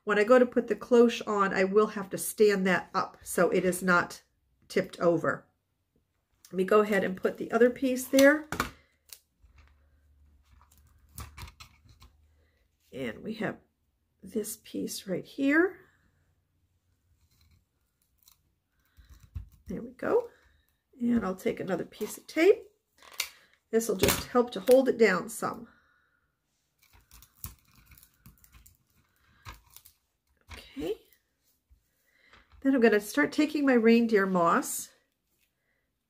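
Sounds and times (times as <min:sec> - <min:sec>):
tape crackles and taps: 0:26.8 - 0:30.7.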